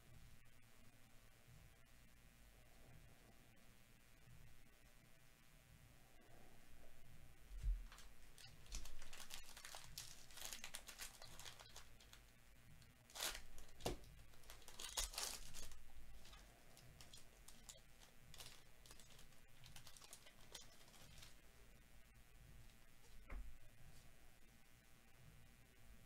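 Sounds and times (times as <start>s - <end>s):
foil wrapper tearing and crinkling: 7.9s - 12.2s, 13.1s - 21.4s.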